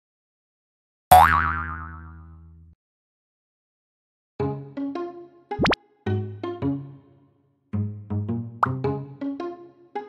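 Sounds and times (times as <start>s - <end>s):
cartoon spring boing: 1.1s - 2.6s.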